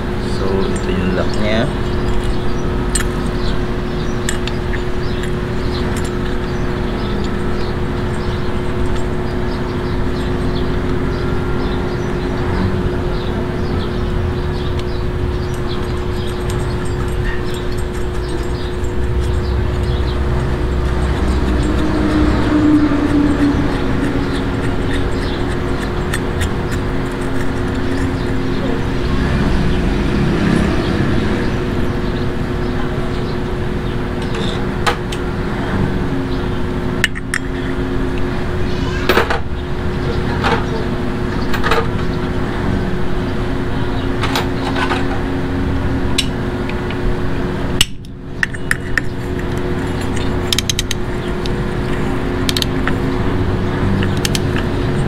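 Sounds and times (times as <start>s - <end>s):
workshop hum: 0.0s - 55.0s.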